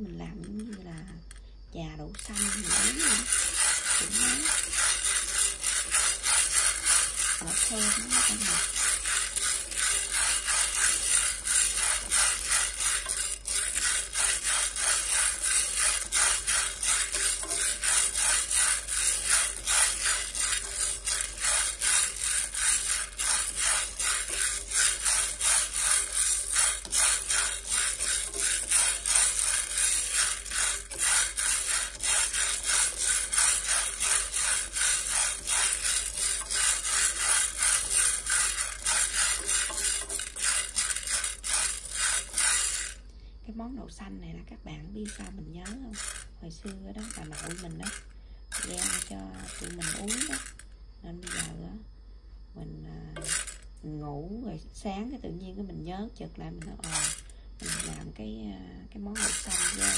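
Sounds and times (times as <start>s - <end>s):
beans rattling in metal pan: 0.0s - 1.4s, 2.1s - 43.0s, 45.0s - 50.6s, 51.2s - 51.6s, 53.1s - 53.7s, 56.6s - 58.2s, 59.2s - 59.9s.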